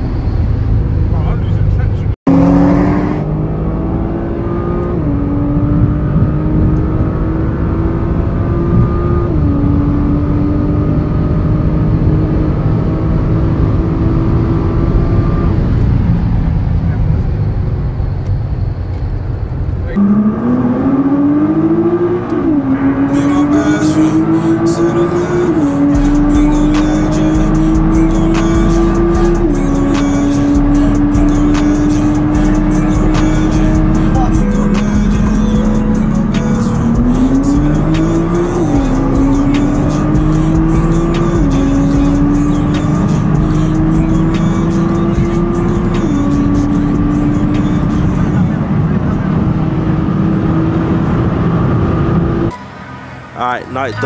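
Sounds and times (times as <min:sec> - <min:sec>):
car engine accelerating through gears: 0:00.0 - 0:54.0
road rumble: 0:00.0 - 0:54.0
music with a beat: 0:25.7 - 0:48.2.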